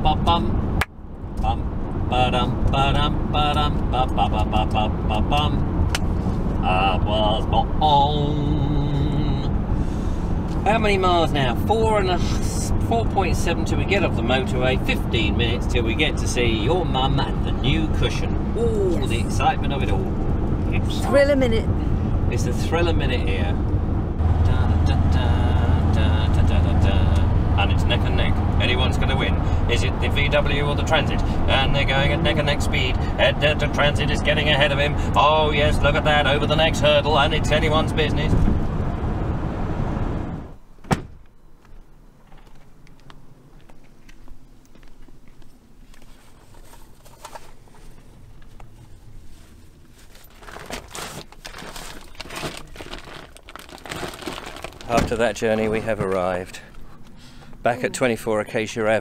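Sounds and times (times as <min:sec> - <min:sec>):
van engine and road drone: 0:00.0 - 0:59.0.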